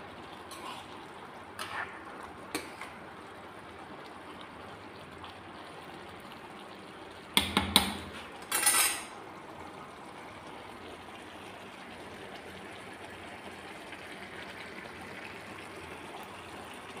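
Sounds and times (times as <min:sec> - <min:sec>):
rice cooking in syrup hissing: 0:00.0 - 0:17.0.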